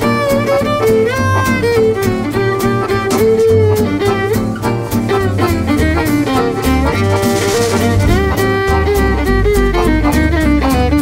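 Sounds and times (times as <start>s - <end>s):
acoustic guitar strumming: 0.0s - 11.0s
double bass line: 0.0s - 11.0s
violin melody with pitch slides: 0.0s - 11.0s.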